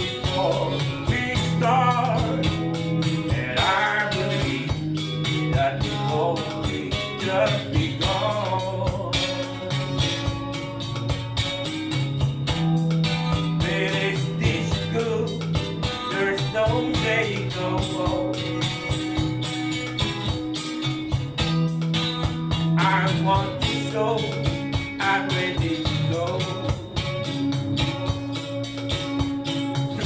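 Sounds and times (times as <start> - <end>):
man singing a slow ballad: 0.0 - 10.0, 13.5 - 18.6, 22.8 - 27.0
guitar strumming: 0.0 - 30.0
held bass notes: 0.0 - 30.0
steady beat: 0.0 - 30.0.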